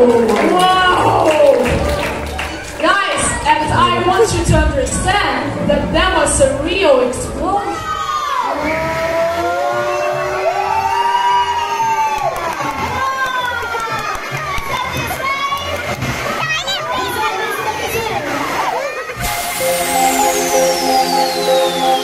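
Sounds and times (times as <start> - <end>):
children shouting and cheering: 0.0 - 3.7, 7.3 - 19.3
jingle with falling whistle: 19.3 - 22.0.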